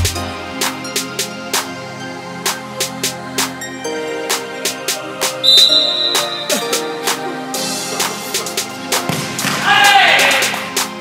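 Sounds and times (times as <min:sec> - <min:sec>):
music with steady beat: 0:00.0 - 0:11.0
referee's whistle blast: 0:05.4 - 0:06.5.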